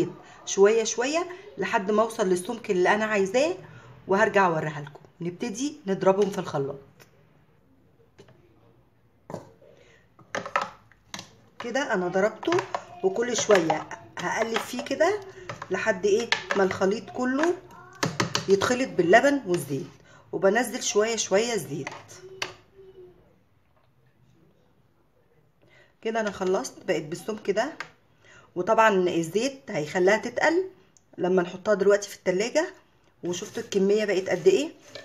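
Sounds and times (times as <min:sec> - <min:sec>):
plastic knock: 0:10.2 - 0:11.3.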